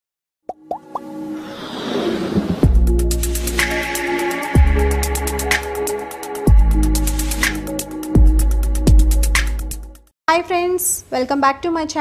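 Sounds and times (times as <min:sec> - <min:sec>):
logo intro music: 0:01.0 - 0:10.0.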